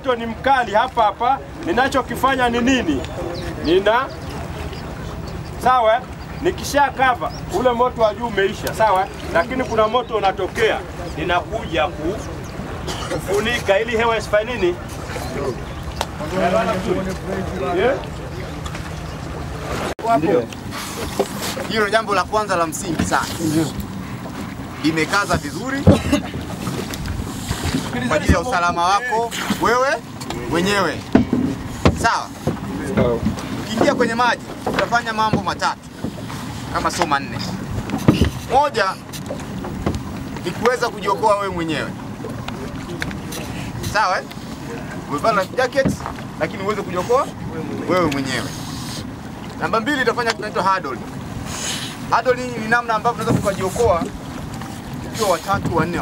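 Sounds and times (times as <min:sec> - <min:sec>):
boat motor rumbling: 0:00.0 - 0:56.0
wind buffeting microphone: 0:01.4 - 0:43.9.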